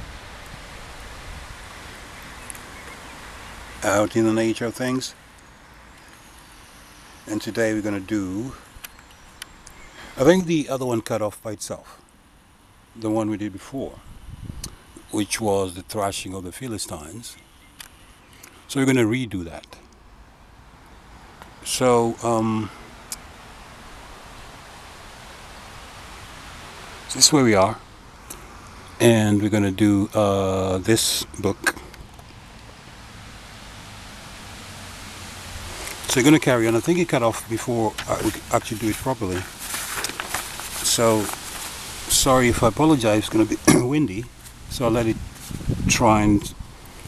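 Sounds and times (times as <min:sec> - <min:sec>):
wind buffeting microphone: 0:00.0 - 0:02.8, 0:13.9 - 0:15.1, 0:42.0 - 0:47.0
breeze through trees and grass: 0:00.0 - 0:47.0
leaves rustling: 0:00.0 - 0:47.0.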